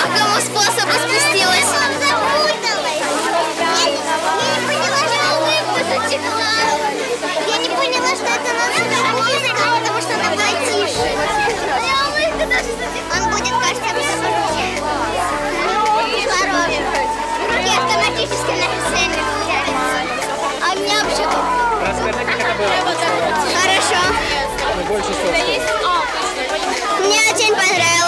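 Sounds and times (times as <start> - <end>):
background music with bass: 0.0 - 28.0
girls talking and exclaiming: 0.0 - 28.0.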